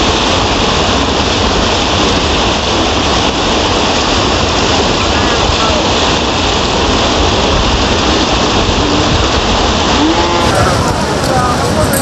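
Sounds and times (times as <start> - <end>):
floodwater rushing: 0.0 - 12.0
faint voices: 8.6 - 12.0.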